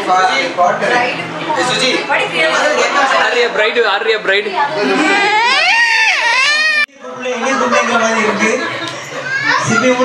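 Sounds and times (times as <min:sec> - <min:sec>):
high-pitched vocal wail: 0:04.8 - 0:06.9.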